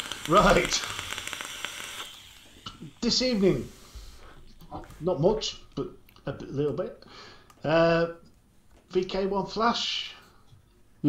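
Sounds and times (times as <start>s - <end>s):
vape coil crackling and sizzling: 0.0s - 4.7s.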